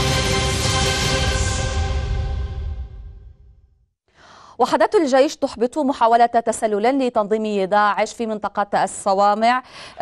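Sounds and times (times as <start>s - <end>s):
music sting: 0.0s - 3.5s
woman breathing in: 4.1s - 4.6s, 9.6s - 10.0s
woman newsreader speaking: 4.5s - 10.0s.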